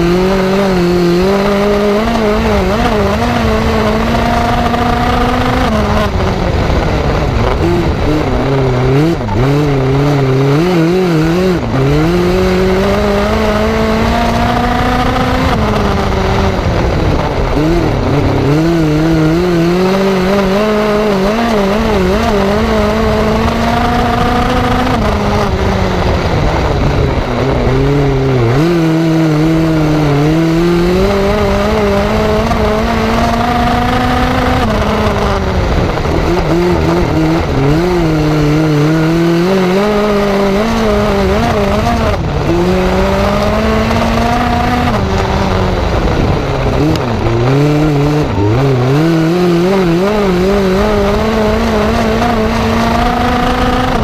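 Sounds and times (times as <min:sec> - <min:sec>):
race car engine revving: 0:00.0 - 0:54.0.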